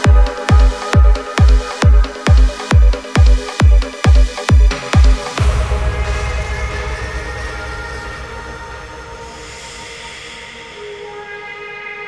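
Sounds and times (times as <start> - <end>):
sustained synth chords: 4.8 - 10.8
low rumble: 5.4 - 10.8.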